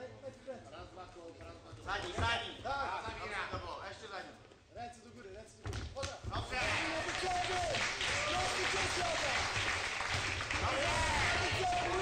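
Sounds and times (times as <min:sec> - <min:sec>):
crowd shouting and cheering: 0:06.4 - 0:12.0.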